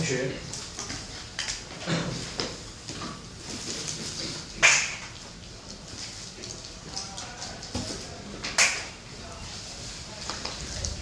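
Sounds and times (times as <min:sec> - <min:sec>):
low steady hum: 0:07.5 - 0:11.0.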